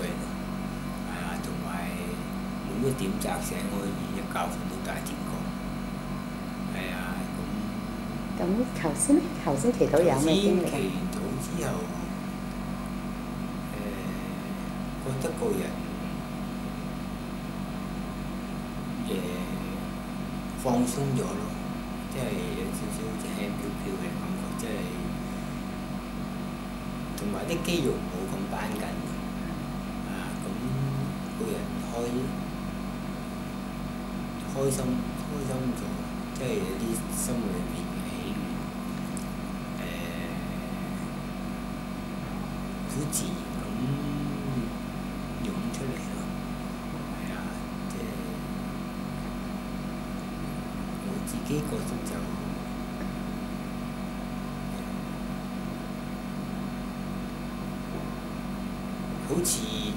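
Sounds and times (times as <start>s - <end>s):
person speaking: 0.0s - 0.3s, 1.1s - 5.5s, 6.8s - 12.2s, 13.7s - 16.2s, 19.0s - 19.8s, 20.6s - 25.2s, 27.2s - 32.4s, 34.4s - 41.1s, 42.2s - 44.8s, 45.4s - 46.3s, 47.0s - 48.5s, 51.0s - 52.6s, 59.2s - 59.9s
low held tones: 0.0s - 13.0s, 27.0s - 32.5s, 42.0s - 53.3s
steady room hum: 0.0s - 59.9s
faint voices: 1.1s - 5.4s, 6.8s - 12.1s, 13.7s - 15.9s, 19.0s - 19.8s, 20.6s - 21.5s, 22.1s - 25.1s, 27.2s - 29.5s, 30.1s - 32.3s, 34.5s - 38.5s, 42.2s - 44.8s, 45.4s - 46.3s, 47.2s - 48.4s, 51.0s - 52.5s, 59.2s - 59.9s.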